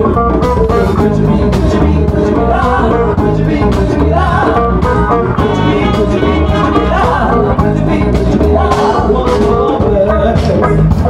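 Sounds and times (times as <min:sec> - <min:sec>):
live band playing upbeat music: 0:00.0 - 0:11.0.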